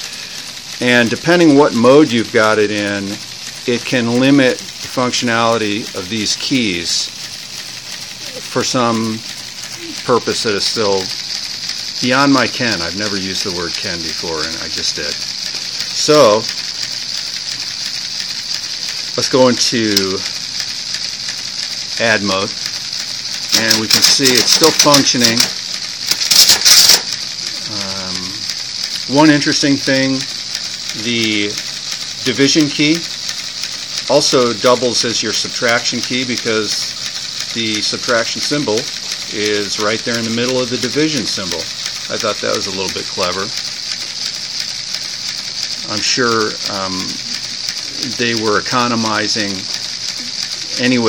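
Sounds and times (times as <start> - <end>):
steady high hiss: 0.0 - 51.0.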